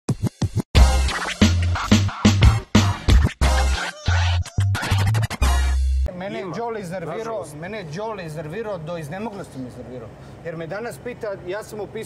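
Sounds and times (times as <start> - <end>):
hip-hop electronic music: 0.1 - 6.1
dj scratch effects: 0.2 - 5.8
heavy bass beat: 0.2 - 6.1.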